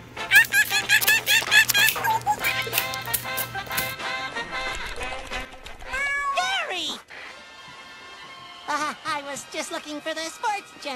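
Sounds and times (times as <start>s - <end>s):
cartoon cat-like meow: 5.8s - 7.0s.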